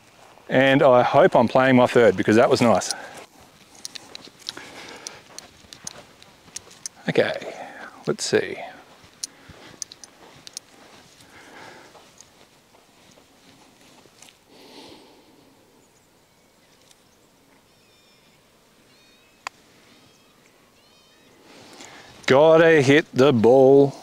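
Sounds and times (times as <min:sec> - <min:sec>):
quiet outdoor ambience: 0:00.0 - 0:24.0
faint bird chirps: 0:15.4 - 0:22.1.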